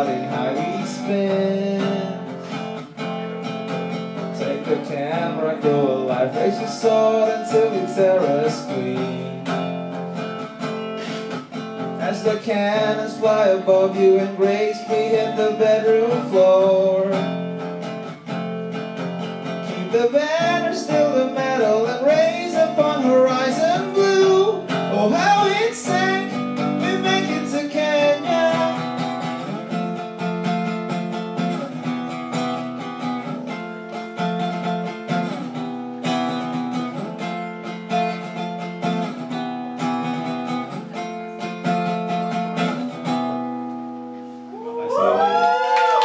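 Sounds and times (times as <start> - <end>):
person singing: 0.0 - 2.3, 4.4 - 9.5, 12.0 - 17.3, 19.6 - 28.9
acoustic guitar strummed chords: 0.0 - 44.5.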